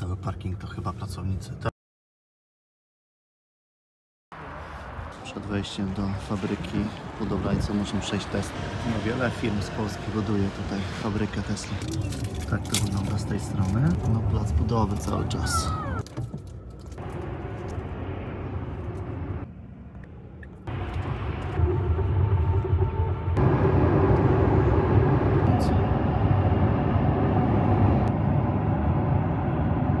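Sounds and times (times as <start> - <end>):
road and tyre rumble in car: 4.4 - 30.0.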